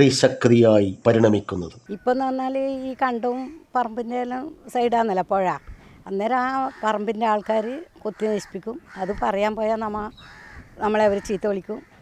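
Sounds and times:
woman speaking: 1.9s - 10.2s, 10.8s - 11.9s.

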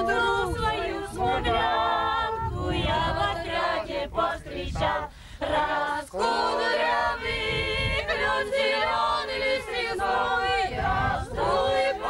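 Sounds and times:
group singing unaccompanied: 0.0s - 12.0s.

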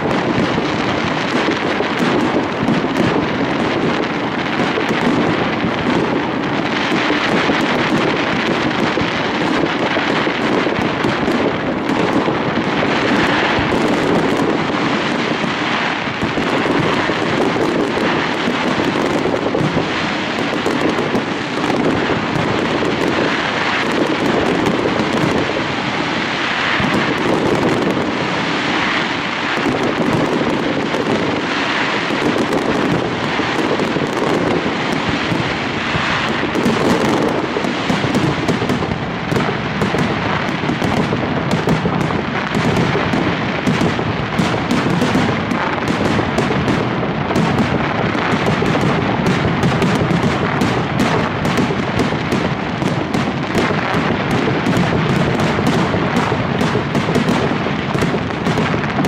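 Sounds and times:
fireworks crackling and banging: 0.0s - 59.0s.

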